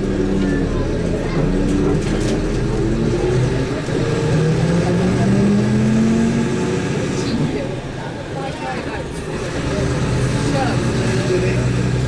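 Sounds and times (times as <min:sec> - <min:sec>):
vehicle engine accelerating: 0:00.0 - 0:08.0, 0:09.1 - 0:12.0
road rumble: 0:00.0 - 0:12.0.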